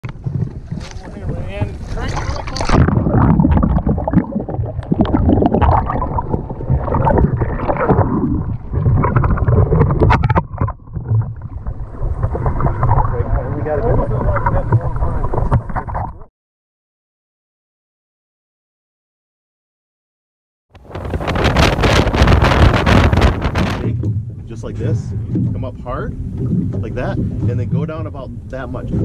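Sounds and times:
wind rumbling on microphone: 0:00.0 - 0:16.3, 0:20.8 - 0:29.0.

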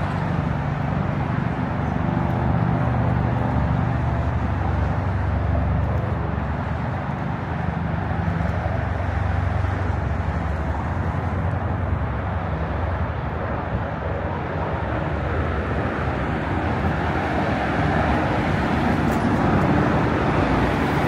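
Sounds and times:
low rumble of city traffic: 0:00.0 - 0:21.0.

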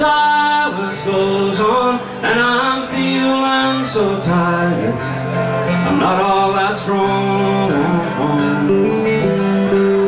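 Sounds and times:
acoustic guitar strumming: 0:00.0 - 0:10.0
person singing: 0:00.0 - 0:10.0.

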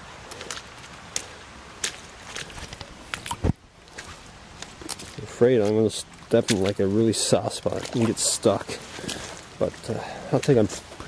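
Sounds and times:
footsteps wading in shallow water: 0:00.0 - 0:11.0.

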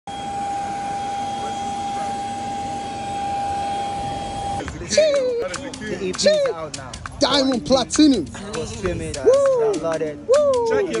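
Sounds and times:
jet turbine running: 0:00.1 - 0:04.8.

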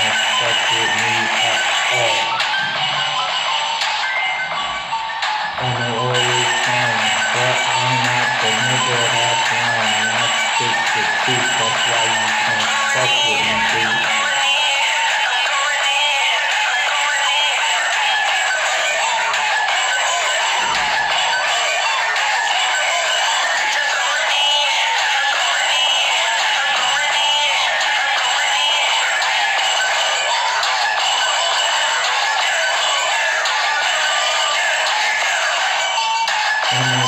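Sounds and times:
person singing: 0:00.0 - 0:04.8, 0:05.5 - 0:30.6, 0:36.6 - 0:37.0
hip-hop backing track: 0:00.0 - 0:37.0.

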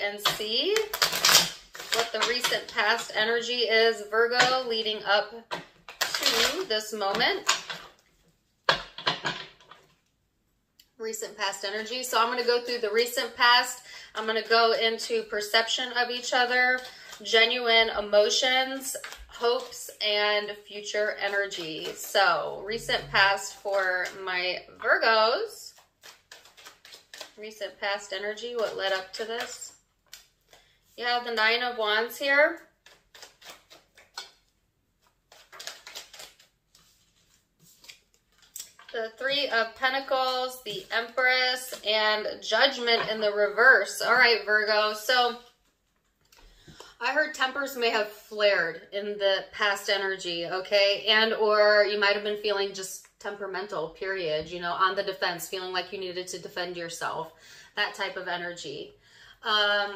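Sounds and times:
cards shuffling: 0:00.2 - 0:03.0, 0:05.5 - 0:08.0, 0:14.4 - 0:20.0, 0:20.7 - 0:22.2, 0:25.7 - 0:31.3, 0:32.6 - 0:41.9.

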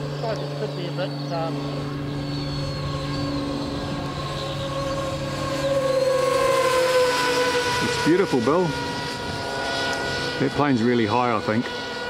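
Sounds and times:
model jet fan motor whining: 0:00.0 - 0:12.0.

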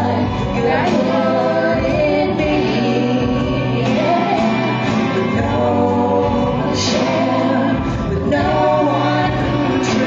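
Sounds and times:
backing music with bass: 0:00.0 - 0:10.0
person singing: 0:00.0 - 0:10.0.

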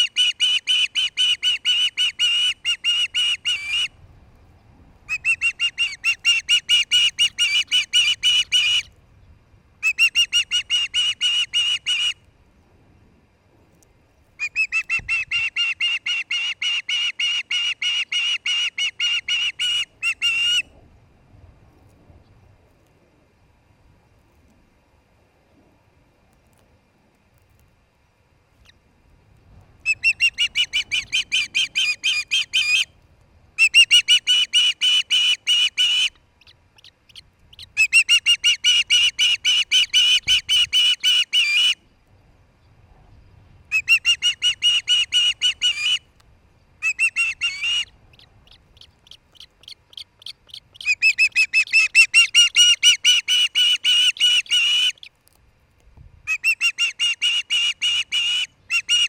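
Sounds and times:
osprey whistled chirps: 0:29.9 - 0:32.9.

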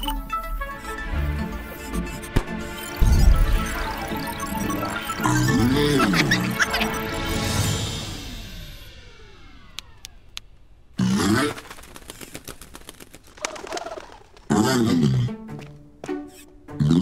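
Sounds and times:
light background music: 0:00.0 - 0:09.6, 0:14.5 - 0:17.0
sharp clicks: 0:09.7 - 0:10.7, 0:11.5 - 0:14.5.

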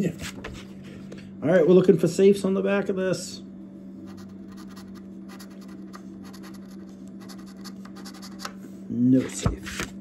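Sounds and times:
coin scratching lottery ticket: 0:04.1 - 0:08.5.

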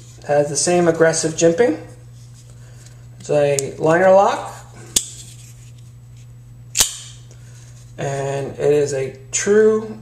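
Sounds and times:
folding knife blade clicking open: 0:06.8 - 0:07.1.

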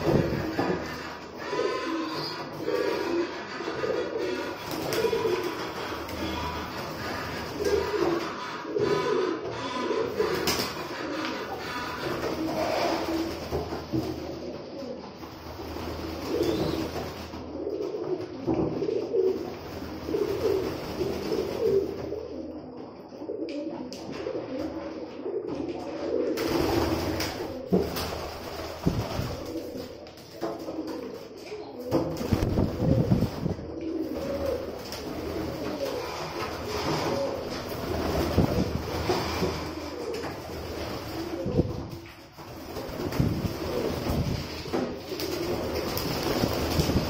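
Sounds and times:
wings flapping: 0:00.0 - 0:22.4, 0:25.5 - 0:47.0
pigeons cooing: 0:00.0 - 0:47.0.

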